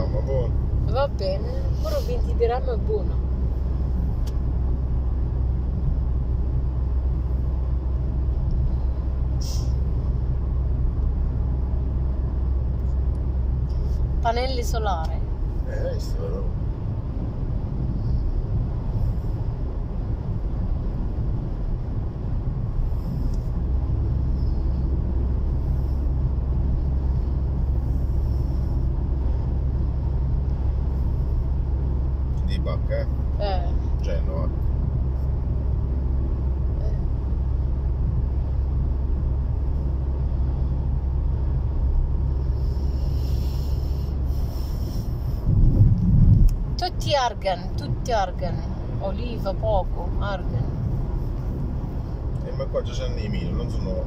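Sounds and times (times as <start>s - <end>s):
car engine and tyres from inside: 0.0s - 54.0s.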